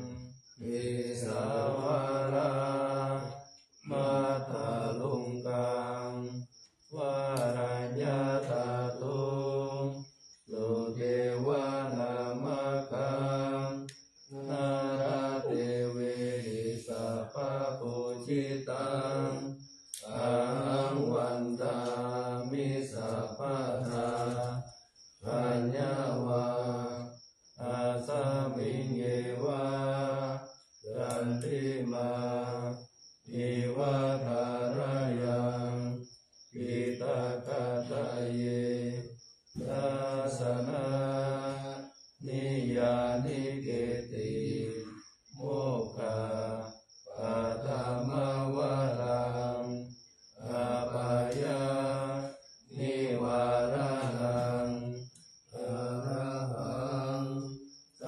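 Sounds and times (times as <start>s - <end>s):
men chanting: 0.0s - 57.7s.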